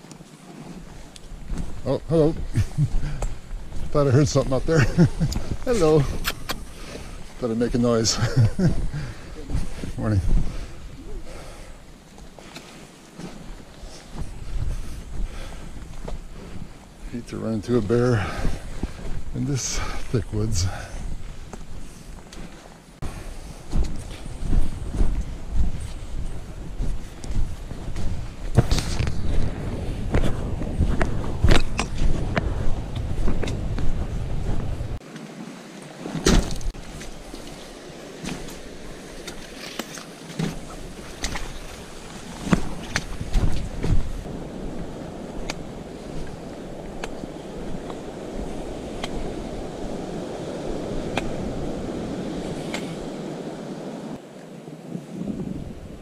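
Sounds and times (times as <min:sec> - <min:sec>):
footsteps on gravel trail: 0:00.0 - 0:35.4, 0:36.0 - 0:53.2
wind buffeting microphone: 0:00.8 - 0:12.5, 0:13.2 - 0:35.0, 0:40.2 - 0:54.2, 0:54.8 - 0:56.0
steady rushing noise: 0:13.3 - 0:54.2
trekking pole taps: 0:46.9 - 0:47.2, 0:48.9 - 0:49.3, 0:51.0 - 0:51.4.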